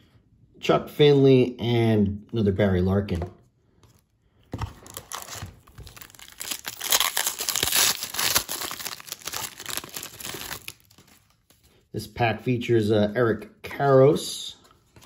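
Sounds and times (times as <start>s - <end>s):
foil wrapper tearing and crinkling: 4.8s - 11.6s.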